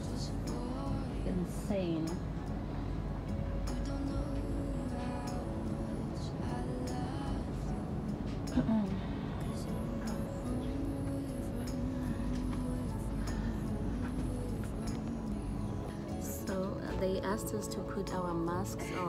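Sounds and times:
slow held melody: 0.0s - 19.0s
steady low hum: 0.0s - 19.0s.

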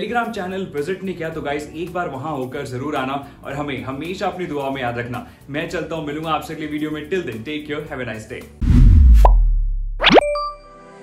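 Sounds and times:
deep bass boom: 8.6s - 10.1s
rising pop sweep: 8.6s - 10.6s.

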